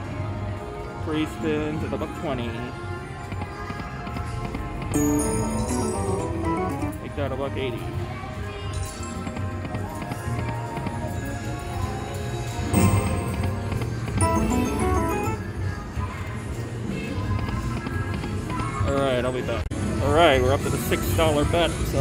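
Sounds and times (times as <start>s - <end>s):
slot machine music and jingles: 4.9s - 7.3s, 12.4s - 15.9s.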